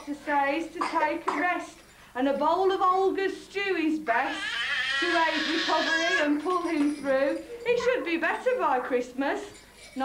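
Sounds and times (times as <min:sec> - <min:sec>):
children squealing and shouting: 0:04.3 - 0:06.3.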